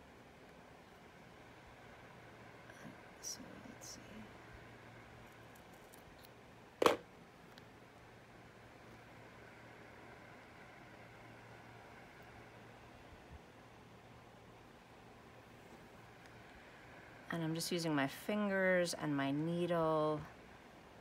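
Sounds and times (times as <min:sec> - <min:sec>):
faint low hum: 0:00.0 - 0:21.0.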